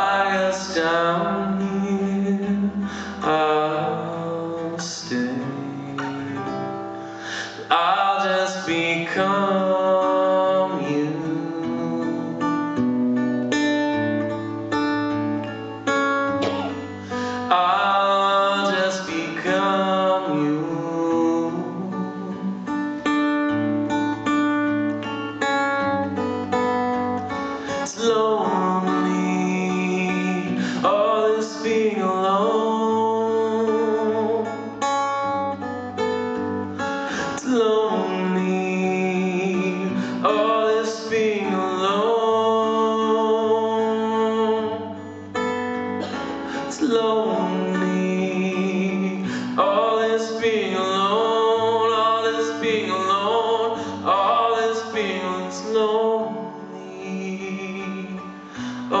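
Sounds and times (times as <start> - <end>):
acoustic guitar playing: 0.0 - 59.0.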